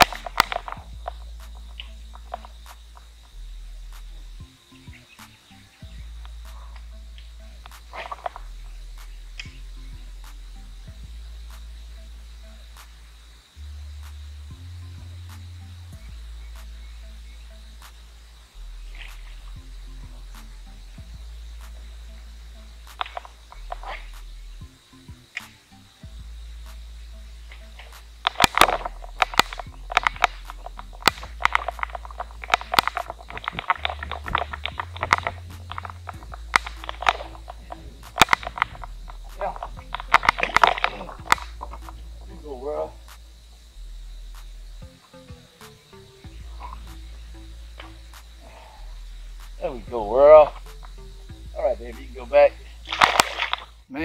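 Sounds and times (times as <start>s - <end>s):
background music with bass line: 0.0s - 54.0s.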